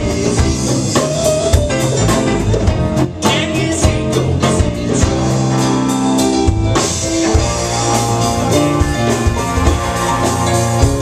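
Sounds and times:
bass guitar: 0.0 - 11.0
drum kit: 0.0 - 11.0.

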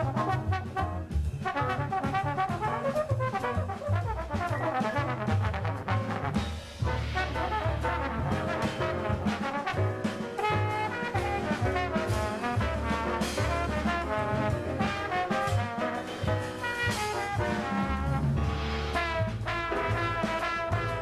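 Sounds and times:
bass: 0.0 - 21.0
drums with cymbals: 0.0 - 21.0
jazz trombone melody: 0.0 - 21.0
piano: 0.0 - 21.0.

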